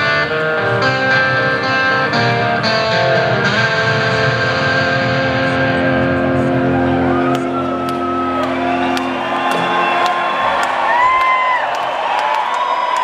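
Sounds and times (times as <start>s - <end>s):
distorted electric guitar chord: 0.0s - 7.2s
crowd cheering and whooping: 6.2s - 13.0s.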